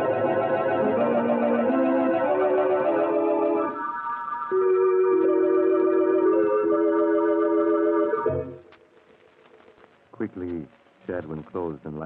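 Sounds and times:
organ chords: 0.0 - 8.9
man talking: 10.1 - 12.0.

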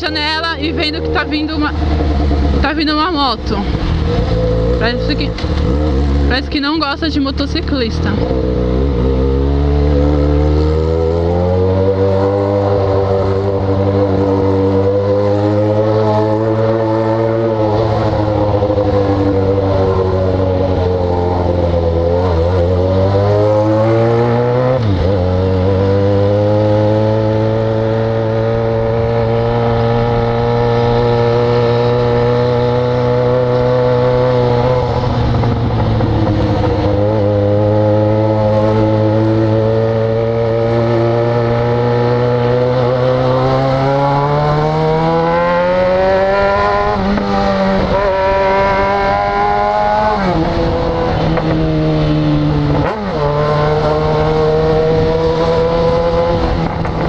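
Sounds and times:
motorcycle engine cruising: 0.0 - 57.0.

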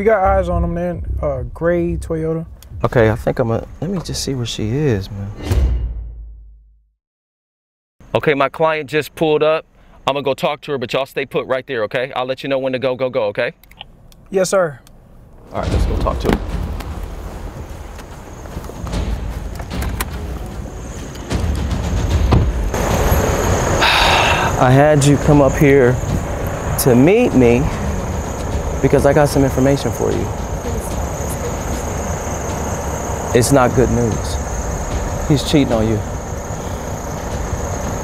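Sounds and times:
car engine rumbling: 0.0 - 5.4, 13.6 - 38.0
knocks: 15.6 - 23.2
hiss: 22.8 - 25.4.

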